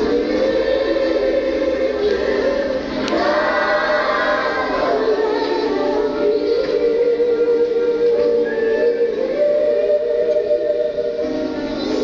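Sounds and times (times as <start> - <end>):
choir singing long held notes: 0.0 - 12.0
music: 0.0 - 12.0.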